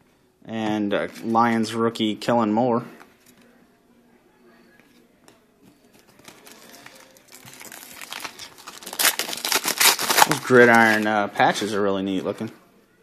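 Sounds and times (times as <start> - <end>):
cards rustling and crinkling: 5.8 - 11.7.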